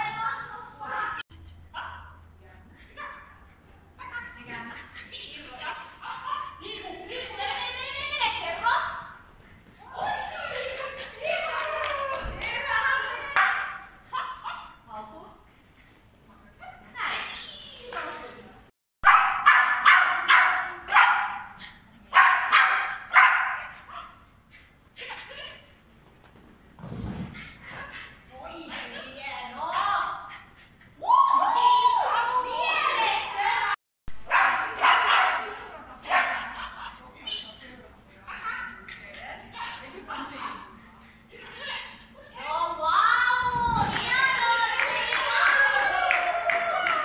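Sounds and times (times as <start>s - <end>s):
small dog barking: 19.0s - 21.5s, 22.1s - 24.1s, 34.2s - 35.5s.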